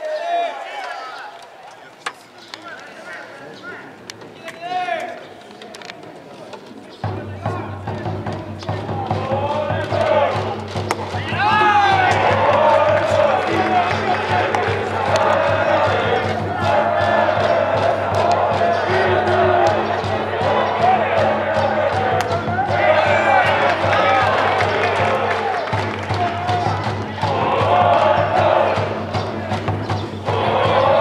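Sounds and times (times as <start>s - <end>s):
music: 7.0s - 31.0s
crowd chanting: 8.6s - 31.0s.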